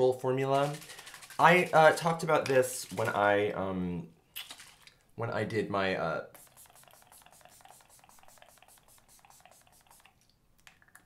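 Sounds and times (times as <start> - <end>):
spray bottle spritzes: 6.3 - 10.2.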